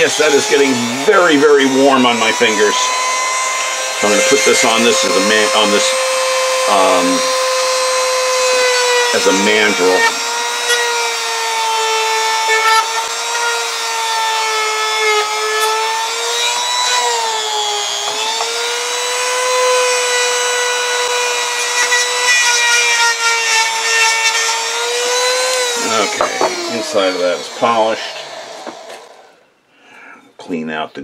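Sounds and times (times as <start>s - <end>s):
rotary tool whining: 0.0s - 29.4s.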